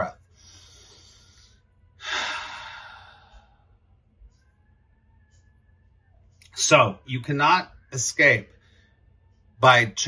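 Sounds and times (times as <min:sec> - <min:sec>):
man breathing deeply: 0:00.3 - 0:03.7.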